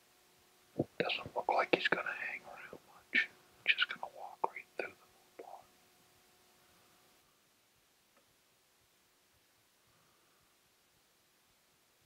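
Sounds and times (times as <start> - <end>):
man whispering: 0.8 - 5.7.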